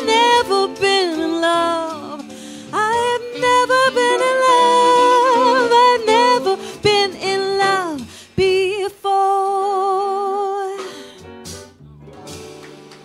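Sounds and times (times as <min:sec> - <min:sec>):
live band accompaniment: 0:00.0 - 0:08.8, 0:10.7 - 0:13.0
woman singing jazz ballad: 0:00.0 - 0:11.1.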